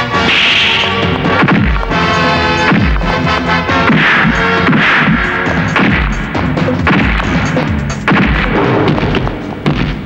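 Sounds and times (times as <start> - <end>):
heavy punch thud: 3.9 - 7.4, 8.0 - 10.0.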